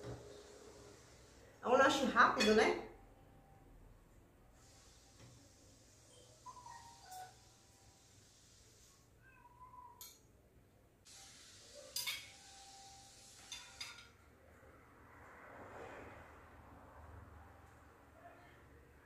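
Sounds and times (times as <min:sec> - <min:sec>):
fork and knife clinking on plate: 0:11.9 - 0:12.4, 0:13.4 - 0:14.2.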